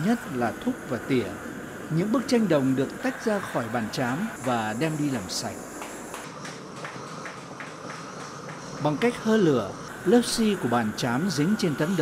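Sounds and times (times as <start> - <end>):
gas torch flame hissing: 0.0 - 12.0.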